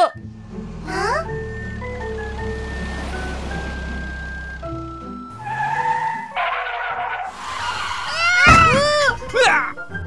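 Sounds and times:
background music: 0:00.0 - 0:07.1, 0:08.1 - 0:10.0
cartoon car racing: 0:00.0 - 0:09.2
tyres screeching: 0:00.4 - 0:09.7.

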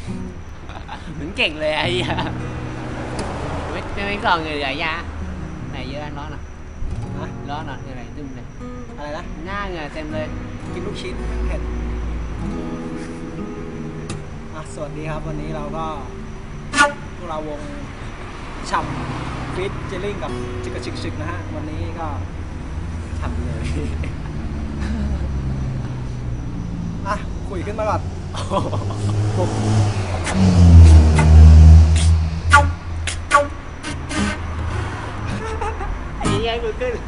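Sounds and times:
vehicle engine rumble: 0:00.0 - 0:37.0
people talking: 0:00.7 - 0:02.4, 0:03.7 - 0:05.1, 0:05.7 - 0:06.4, 0:07.1 - 0:11.8, 0:14.6 - 0:18.0, 0:18.6 - 0:22.3, 0:23.2 - 0:24.2, 0:24.8 - 0:25.4, 0:27.0 - 0:30.5, 0:35.4 - 0:37.0
breathy puff of air: 0:12.9 - 0:13.3
short car horn beep: 0:16.6 - 0:17.2, 0:30.9 - 0:34.6.

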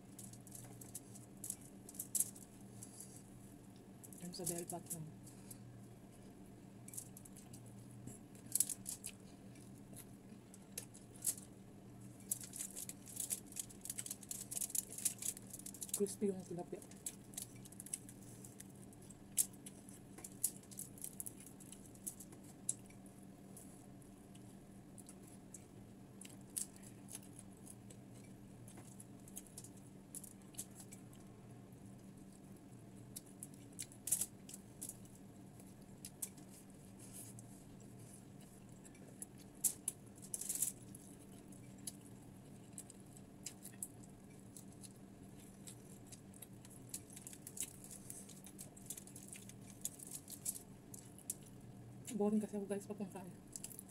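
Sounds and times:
crisp crackles of eating fried fish: 0:00.0 - 0:53.9
faint steady hum: 0:00.0 - 0:53.9.

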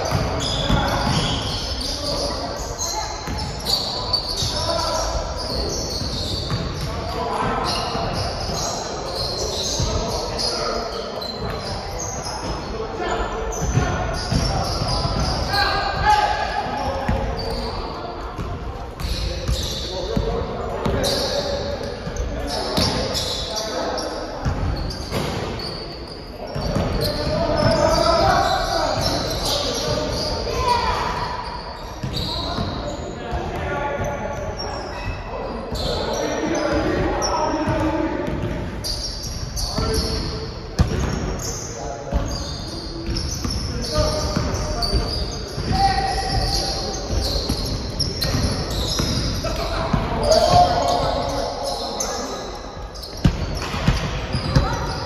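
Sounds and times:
players calling out: 0:00.0 - 0:55.0.

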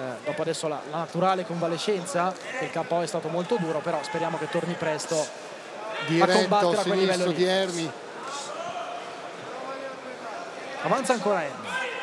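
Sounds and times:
man commentating: 0:06.0 - 0:07.9.

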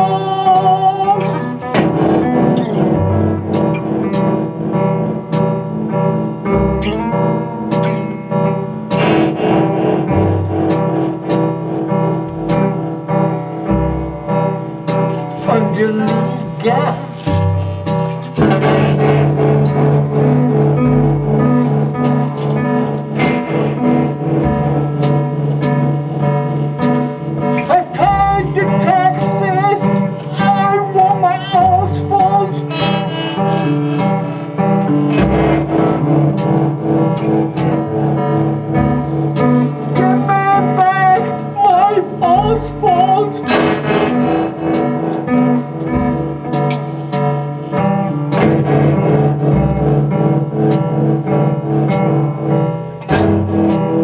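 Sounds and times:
band playing amplified guitars: 0:00.0 - 0:54.0
wavering high guitar tones: 0:27.6 - 0:38.0.

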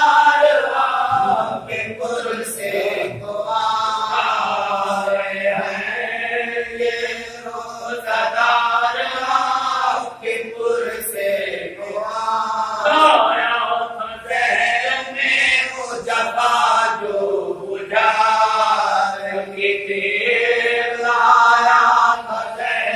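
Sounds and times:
men chanting an elegy: 0:00.0 - 0:22.9.

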